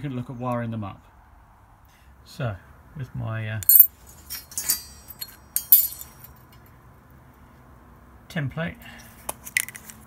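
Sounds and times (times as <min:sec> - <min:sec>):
steel pieces clinking: 0:03.6 - 0:06.5
metal set down on concrete: 0:03.6 - 0:06.6.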